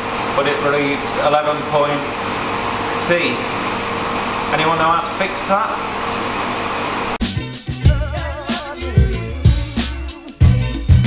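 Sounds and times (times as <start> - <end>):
steady machine hum: 0.0 - 9.8
background music with a beat: 7.2 - 11.0.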